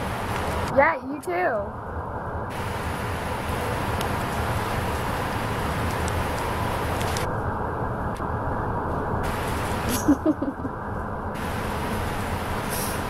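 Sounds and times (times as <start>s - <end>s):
bus engine and road rumble: 0.0s - 13.0s
short laugh: 9.9s - 10.7s.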